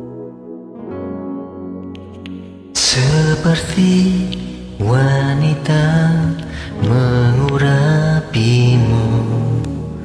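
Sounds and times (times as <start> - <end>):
karaoke backing track: 0.0 - 10.0
young man singing: 2.8 - 10.0.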